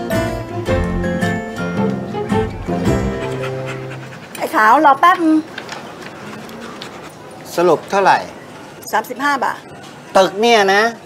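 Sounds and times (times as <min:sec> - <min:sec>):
soft background music: 0:00.0 - 0:04.3
dog panting: 0:02.9 - 0:05.1, 0:06.0 - 0:07.7.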